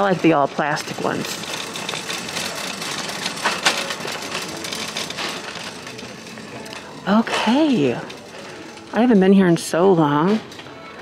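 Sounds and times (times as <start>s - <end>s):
shopping cart rolling and rattling: 0.0s - 11.0s.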